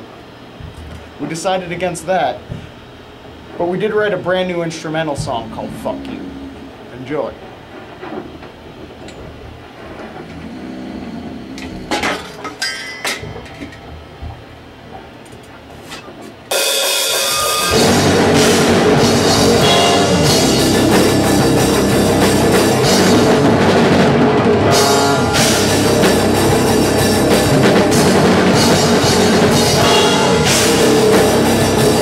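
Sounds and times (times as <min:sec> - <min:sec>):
heavy metal band playing: 0:04.8 - 0:07.1, 0:16.5 - 0:32.0.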